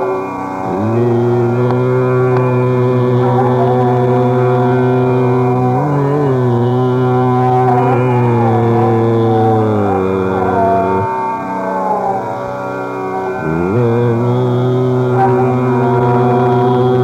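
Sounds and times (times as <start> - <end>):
faint melodic lines: 0.0 - 17.0
man singing long low note: 0.0 - 17.0.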